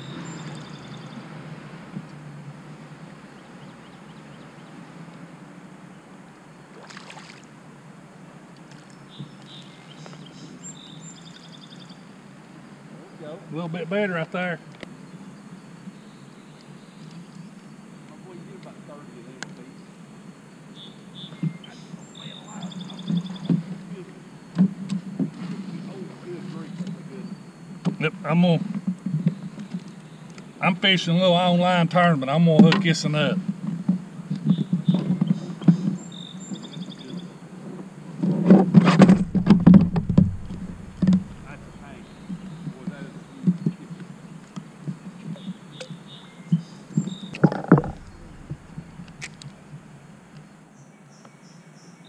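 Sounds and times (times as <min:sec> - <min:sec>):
knocks and thumps against a kayak: 0:38.2 - 0:42.8, 0:47.0 - 0:49.4
high chirps: 0:39.1 - 0:42.8, 0:47.1 - 0:49.5.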